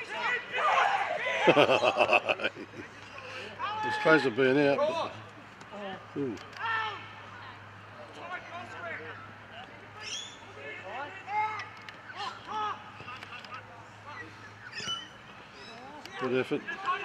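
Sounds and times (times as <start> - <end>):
distant shouts and calls: 0.0 - 17.0.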